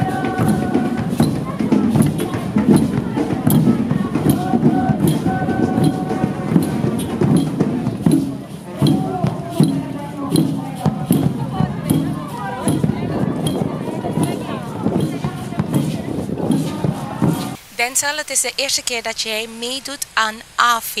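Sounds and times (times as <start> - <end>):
bass drum beating: 0.0 - 17.6
many voices: 0.0 - 21.0.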